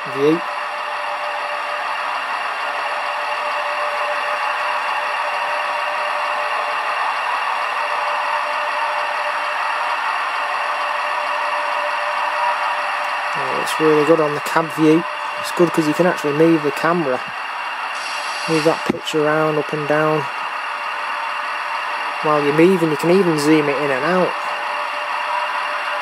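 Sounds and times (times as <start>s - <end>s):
model train whirring: 0.0s - 26.0s.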